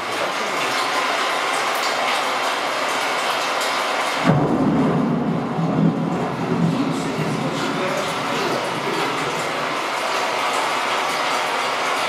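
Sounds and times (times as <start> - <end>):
deep rumble: 4.3 - 8.9.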